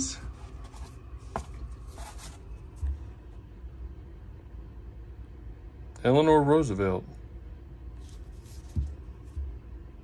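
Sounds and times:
low steady hum: 0.0s - 10.0s
paper rustle: 0.3s - 3.0s, 8.0s - 9.0s.

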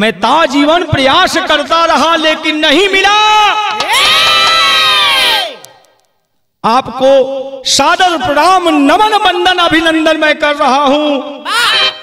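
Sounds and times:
man singing long high notes: 11.5s - 12.0s.

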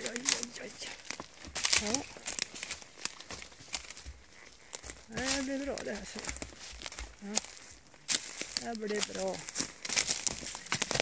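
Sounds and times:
twigs snapping under hooves: 0.0s - 11.0s.

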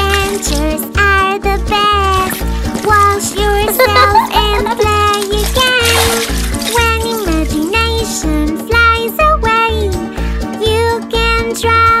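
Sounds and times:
person singing: 0.0s - 9.8s
bouncy backing track: 0.0s - 11.7s.

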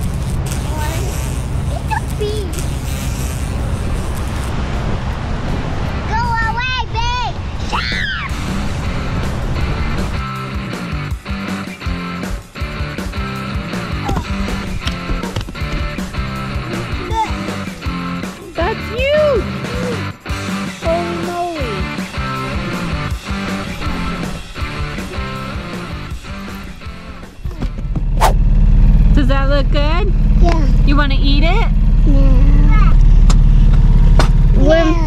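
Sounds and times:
motorboat engine rumble: 0.0s - 20.2s, 22.0s - 35.0s
child calling out: 0.7s - 2.6s, 16.8s - 17.6s
music with steady beat: 8.4s - 28.1s.

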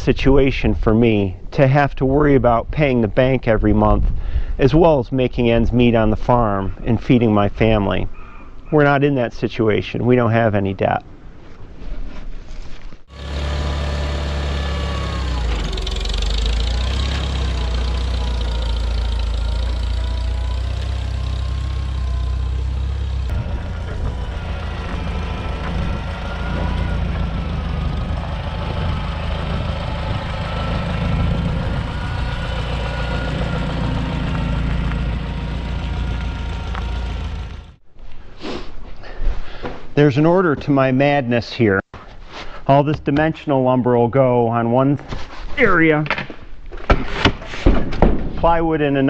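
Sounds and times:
vehicle engine rumbling: 13.0s - 37.9s.

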